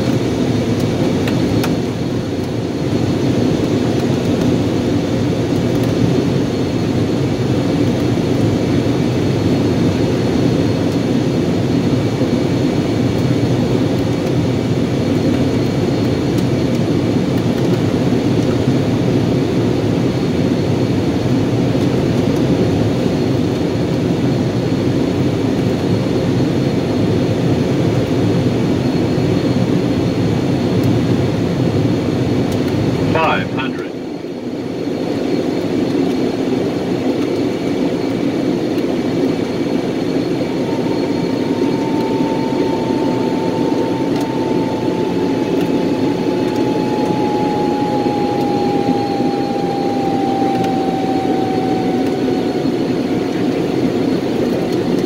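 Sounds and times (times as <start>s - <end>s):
light aircraft engine drone: 0.0s - 55.0s
thin whistle-like tone falling: 40.1s - 54.1s.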